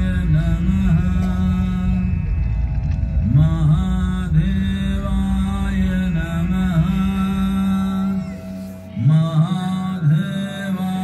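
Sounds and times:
mantra chanting with music: 0:00.0 - 0:11.0
steady low drone: 0:00.0 - 0:11.0.

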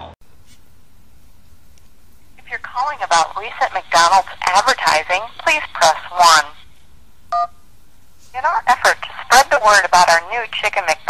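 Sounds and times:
automated phone menu voice: 0:02.4 - 0:06.6, 0:08.4 - 0:11.0
touch-tone phone beep: 0:07.4 - 0:07.6.

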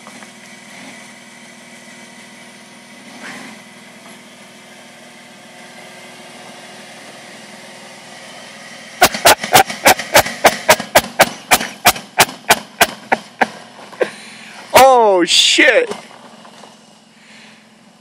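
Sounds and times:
engine running at low revs: 0:00.0 - 0:18.0
loud sharp knocks: 0:09.0 - 0:13.6.

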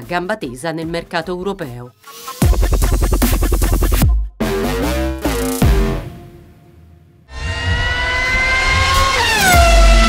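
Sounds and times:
background music: 0:00.0 - 0:07.3
car engine revving effect: 0:07.3 - 0:10.0.

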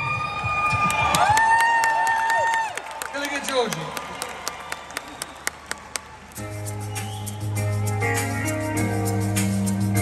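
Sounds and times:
crowd applauding: 0:00.3 - 0:07.6.

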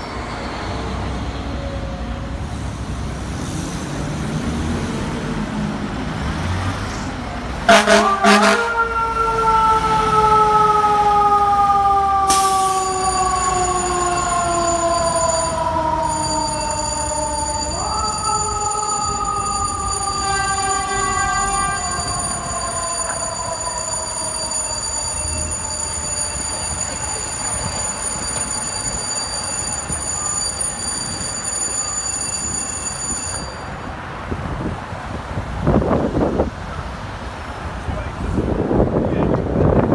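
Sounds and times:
traffic noise: 0:00.0 - 0:39.9
fire engine siren: 0:07.6 - 0:34.0.

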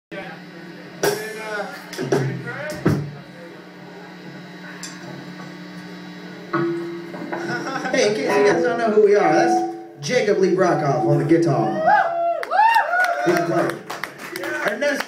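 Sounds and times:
amplifier hum: 0:00.1 - 0:14.2
drum and cymbal hits: 0:00.8 - 0:03.4, 0:06.4 - 0:08.0
held guitar note: 0:06.4 - 0:10.0.

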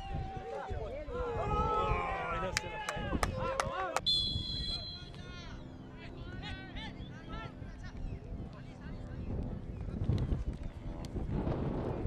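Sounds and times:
players shouting: 0:00.0 - 0:07.6
referee's whistle: 0:04.0 - 0:05.2.

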